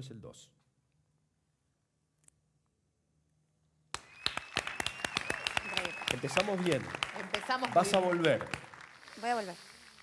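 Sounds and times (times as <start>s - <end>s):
long high whistle: 4.0s - 6.2s
audience applause: 4.0s - 10.0s.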